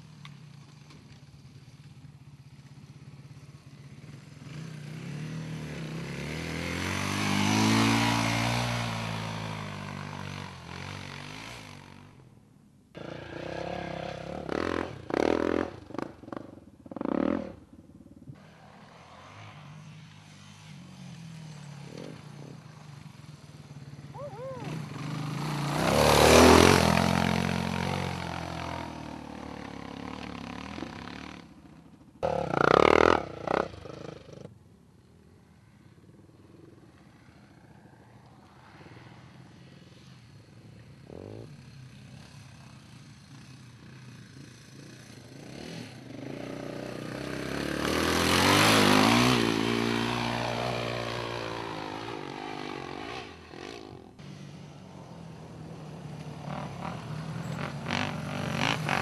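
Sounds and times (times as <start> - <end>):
dirt bike engines revving: 0.0 - 12.2, 13.0 - 17.8, 18.4 - 34.5, 36.4 - 59.0.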